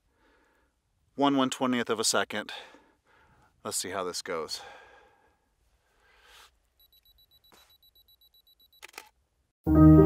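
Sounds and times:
camera self-timer beeping: 0:06.8 - 0:09.2
camera shutter click: 0:08.8 - 0:09.2.

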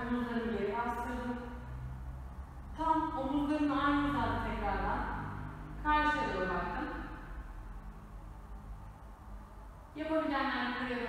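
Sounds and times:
woman talking: 0:00.0 - 0:01.5, 0:02.8 - 0:05.2, 0:05.8 - 0:07.1, 0:10.0 - 0:11.0
low steady room hum: 0:00.0 - 0:11.0.

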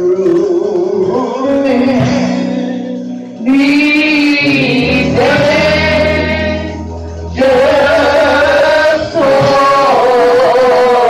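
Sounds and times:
woman singing hymn: 0:00.5 - 0:11.0
low steady bass note: 0:02.0 - 0:08.4.

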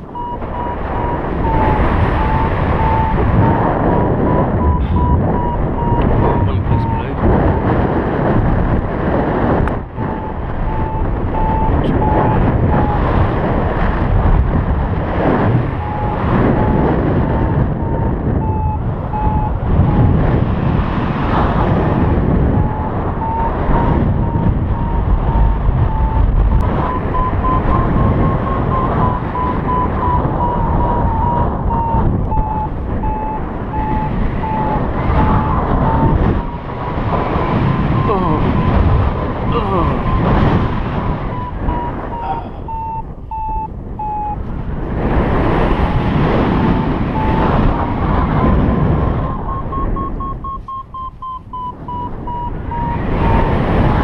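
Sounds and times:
variometer beeping: 0:00.0 - 0:07.6, 0:09.6 - 0:13.5, 0:15.4 - 0:20.3, 0:21.2 - 0:44.6, 0:45.2 - 0:54.0
wind rushing across microphone: 0:00.0 - 0:54.0.

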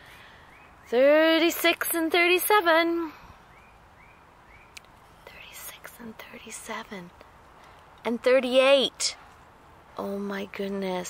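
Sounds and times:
woman whispering: 0:05.2 - 0:07.1.

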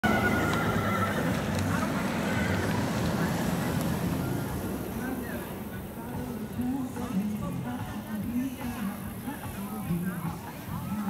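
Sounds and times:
horse whinnying: 0:00.0 - 0:02.9
hoofbeats on paved road: 0:00.0 - 0:11.0.

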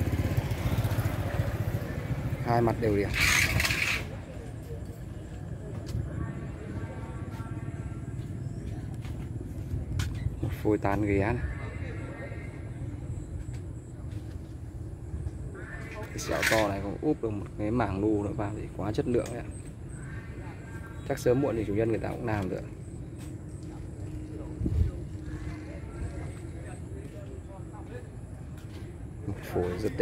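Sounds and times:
engine idling: 0:00.0 - 0:30.0
man talking: 0:10.4 - 0:11.8, 0:16.0 - 0:19.6, 0:21.0 - 0:22.8, 0:29.2 - 0:30.0.

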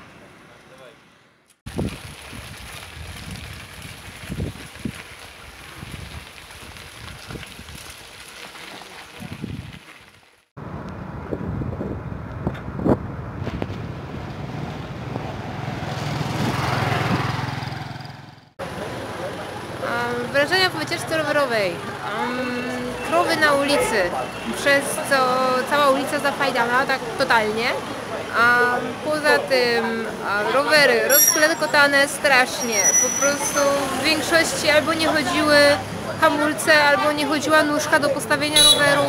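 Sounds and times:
wind on microphone: 0:01.7 - 0:08.0, 0:09.2 - 0:09.8, 0:10.7 - 0:17.5
motor vehicle humming: 0:10.6 - 0:29.1.

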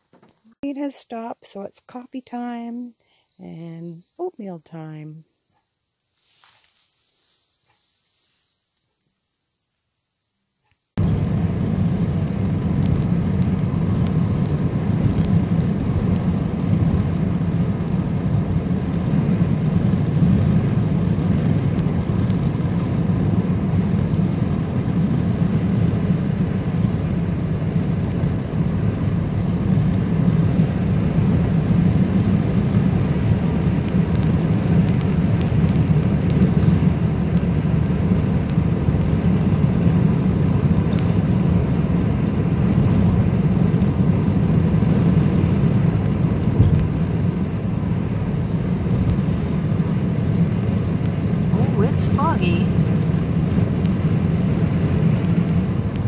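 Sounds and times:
vehicle rumble from inside cabin: 0:11.0 - 0:56.0.

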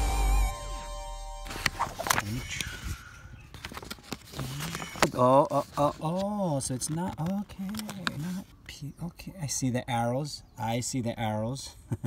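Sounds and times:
paper sheet clicks and rustles: 0:01.5 - 0:08.6.

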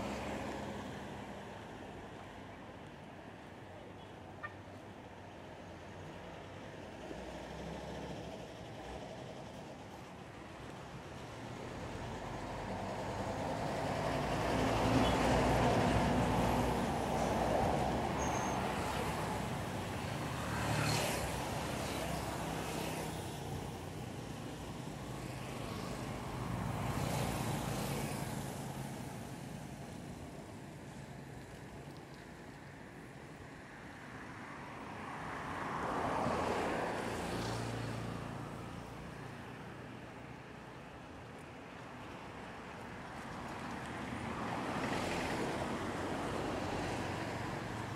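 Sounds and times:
vehicles passing on a street: 0:00.0 - 0:47.9.

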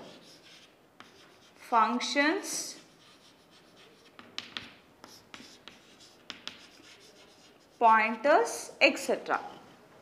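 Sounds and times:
chalk tapping and scratching on chalkboard: 0:00.0 - 0:08.3.

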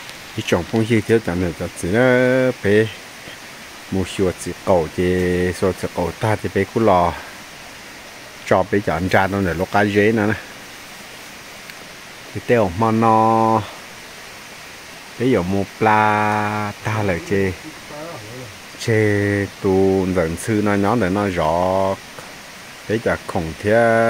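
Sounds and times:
background hiss: 0:00.0 - 0:24.0
man speaking: 0:12.4 - 0:13.8, 0:15.2 - 0:22.0, 0:22.9 - 0:24.0.

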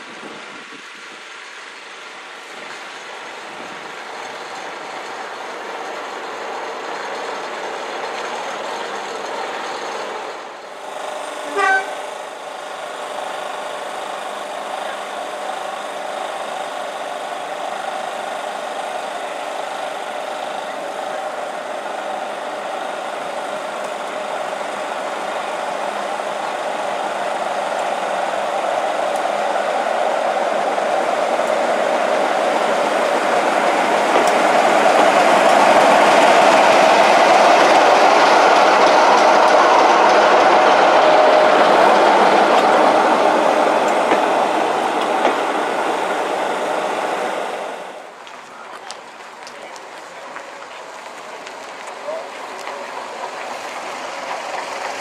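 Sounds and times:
diesel locomotive engine hum: 0:00.0 - 0:55.0
train coaches rolling by: 0:00.0 - 0:55.0.

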